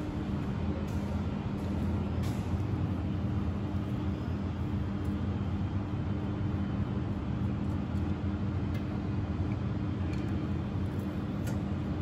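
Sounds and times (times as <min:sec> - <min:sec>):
fire pump engine humming: 0:00.0 - 0:12.0.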